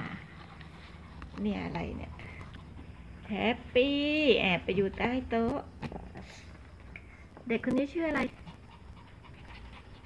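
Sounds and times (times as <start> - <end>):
dog panting: 0.0 - 3.7, 8.0 - 10.0.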